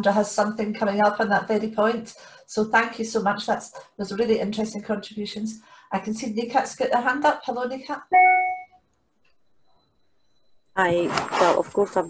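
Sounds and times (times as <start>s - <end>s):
short electronic tone: 8.1s - 8.8s.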